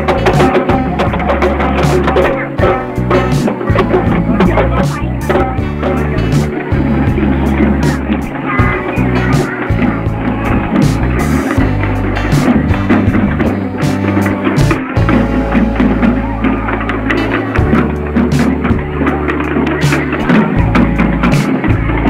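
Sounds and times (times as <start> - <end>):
hand drums beaten: 0.0 - 22.0
procession music: 0.0 - 22.0.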